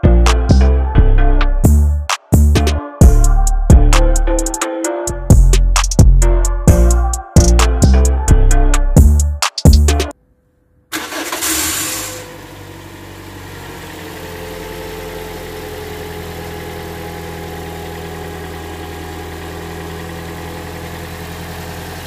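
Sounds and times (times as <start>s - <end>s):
car engine starting and idling: 10.9s - 22.0s.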